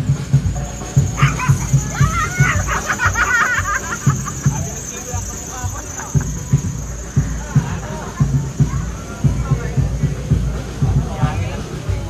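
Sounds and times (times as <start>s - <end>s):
loud parade music: 0.0s - 12.0s
small dog yipping: 1.0s - 3.0s.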